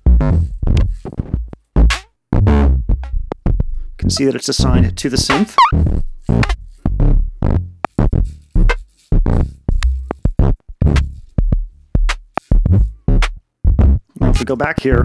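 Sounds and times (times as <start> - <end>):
electronic drum thumps: 10.3 - 14.4.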